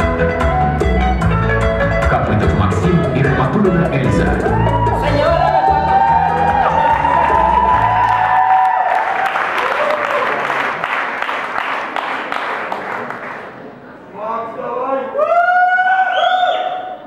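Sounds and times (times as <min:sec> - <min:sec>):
music with strong bass line: 0:00.0 - 0:08.1
audience applause: 0:04.5 - 0:13.7.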